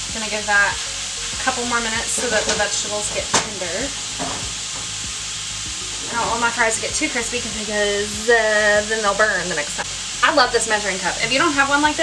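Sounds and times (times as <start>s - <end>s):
meat sizzling in a skillet: 0.0s - 12.0s.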